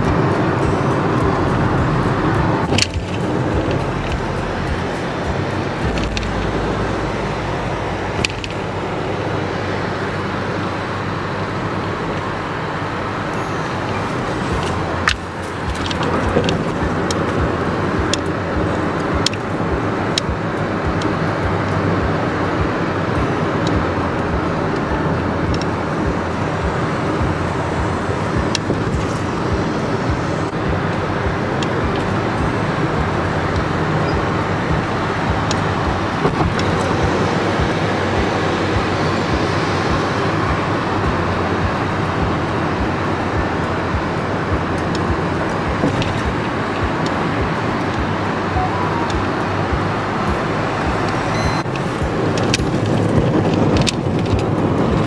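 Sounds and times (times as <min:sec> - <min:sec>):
road and engine noise in car: 0:00.0 - 0:55.0.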